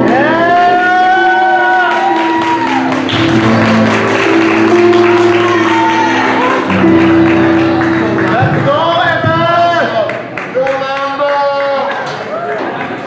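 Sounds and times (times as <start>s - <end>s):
pop-rock band playing: 0.0s - 10.3s.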